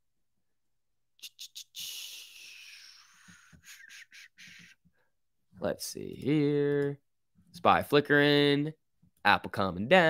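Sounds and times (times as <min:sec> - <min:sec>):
mouth clicks: 0:01.2 - 0:04.8.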